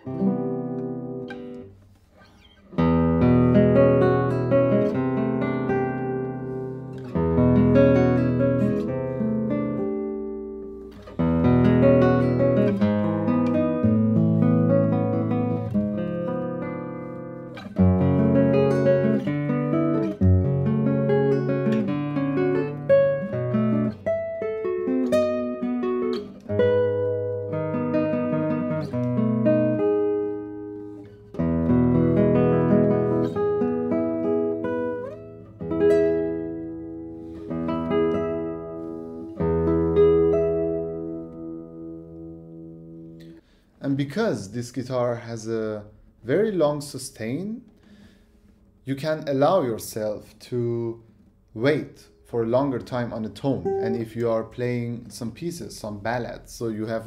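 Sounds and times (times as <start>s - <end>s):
fingerpicked classical guitar: 0.0s - 43.6s, 44.2s - 55.5s.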